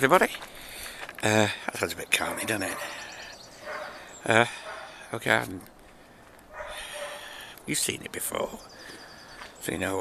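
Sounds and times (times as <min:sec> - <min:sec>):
faint bird chirps: 0:02.5 - 0:05.1, 0:08.2 - 0:10.0.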